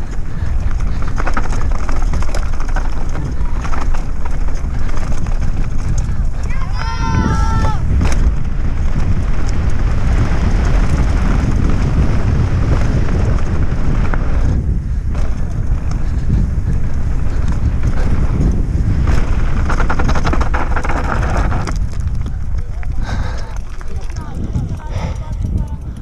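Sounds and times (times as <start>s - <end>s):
tyres crunching over gravel: 0.0s - 25.9s
bike rattling on stony ground: 0.0s - 26.0s
wind buffeting microphone: 0.0s - 26.0s.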